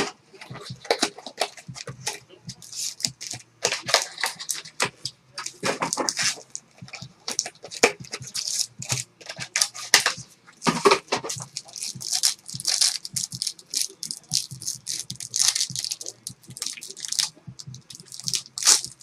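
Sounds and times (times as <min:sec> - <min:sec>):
plastic wrappers crinkling: 0:00.0 - 0:19.0.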